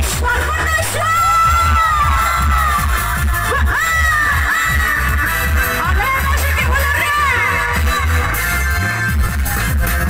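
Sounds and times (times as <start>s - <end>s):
crowd shouting and cheering: 0.0s - 10.0s
heavy pulsing bass beat: 0.0s - 10.0s
live band music through pa: 0.0s - 10.0s.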